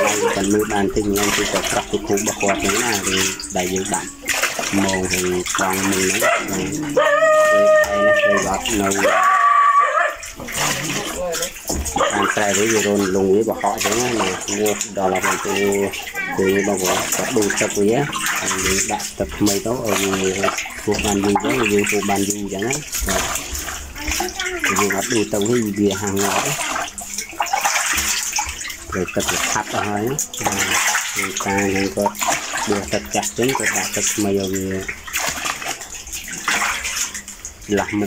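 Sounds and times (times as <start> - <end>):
fish thrashing in water: 0.0 - 38.0.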